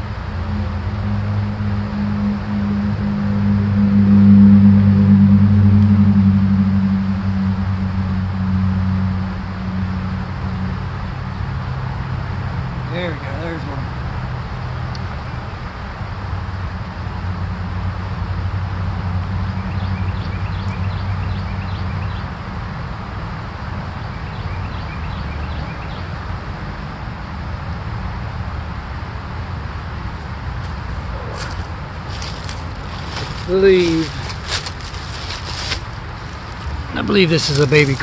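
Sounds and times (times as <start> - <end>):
low rumble: 0.0 - 20.2, 27.9 - 38.0
footsteps in dry leaf litter: 30.6 - 38.0.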